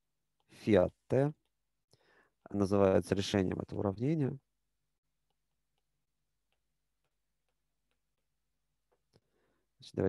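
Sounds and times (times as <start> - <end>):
stylus tapping on tablet screen: 5.2 - 9.1.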